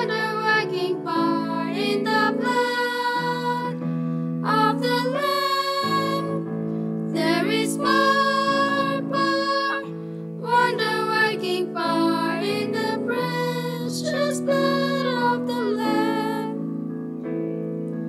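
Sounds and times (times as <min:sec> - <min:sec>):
girls singing worship song: 0:00.0 - 0:16.6
instrumental backing with low chords: 0:16.5 - 0:18.0.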